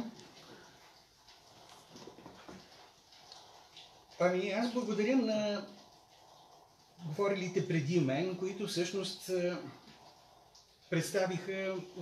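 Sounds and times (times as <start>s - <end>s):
soft indistinct sounds: 0.0s - 12.0s.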